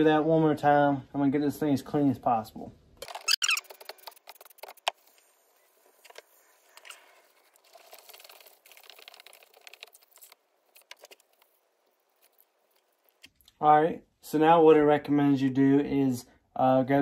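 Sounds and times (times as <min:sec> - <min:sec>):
wet squishing and splashing: 0:07.3 - 0:13.6.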